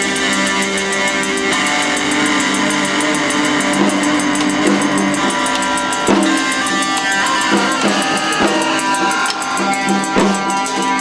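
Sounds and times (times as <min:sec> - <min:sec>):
drum kit beat: 0:00.0 - 0:11.0
electric guitar ringing chords: 0:00.0 - 0:11.0.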